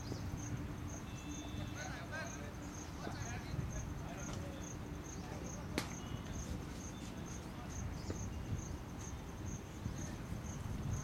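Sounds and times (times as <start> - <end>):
insect chirping: 0.0 - 11.0.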